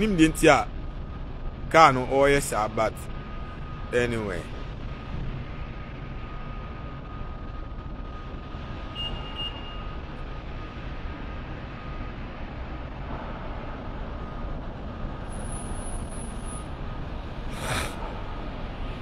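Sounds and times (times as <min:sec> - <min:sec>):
traffic rumble: 0:00.0 - 0:19.0
faint thin whine: 0:15.0 - 0:19.0.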